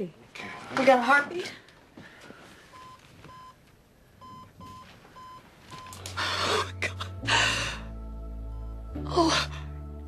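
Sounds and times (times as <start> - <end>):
cardiac monitor beeping: 2.7 - 3.6, 4.2 - 6.2.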